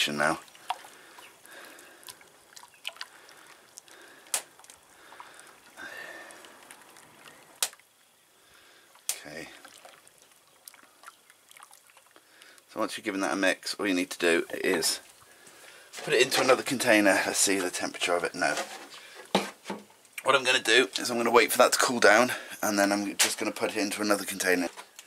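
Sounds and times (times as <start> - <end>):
liquid sloshing and dripping: 0.0 - 12.8.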